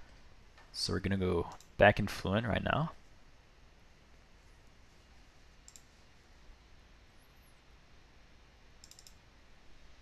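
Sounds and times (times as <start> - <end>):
faint room hiss: 0.0 - 10.0
computer mouse clicks: 5.6 - 6.0, 8.8 - 9.2.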